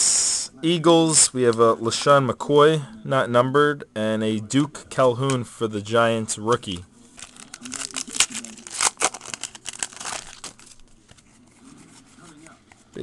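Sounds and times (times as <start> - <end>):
cards rustling: 6.4 - 13.0
wrapper crinkling and tearing: 7.1 - 11.2.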